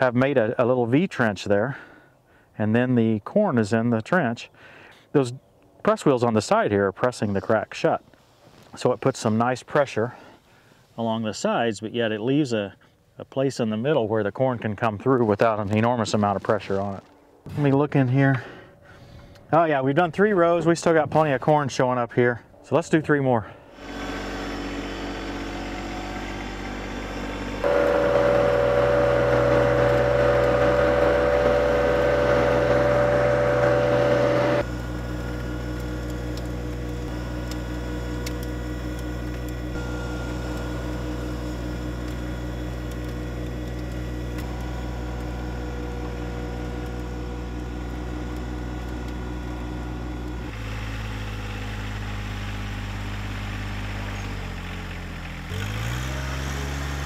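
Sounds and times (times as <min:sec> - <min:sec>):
tractor diesel engine running: 0:23.7 - 0:57.0.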